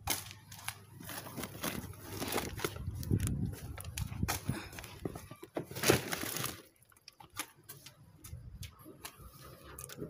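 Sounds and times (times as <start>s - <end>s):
plastic bag rustling: 0.0s - 7.5s.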